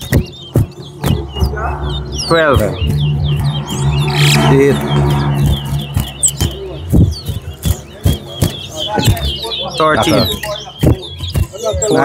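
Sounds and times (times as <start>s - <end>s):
finch singing whistled notes: 0.0s - 12.0s.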